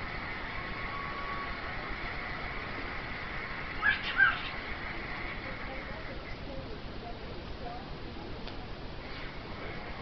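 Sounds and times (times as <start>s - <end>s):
steady background hum: 0.0s - 10.0s
cockatiel chirps: 3.8s - 4.6s.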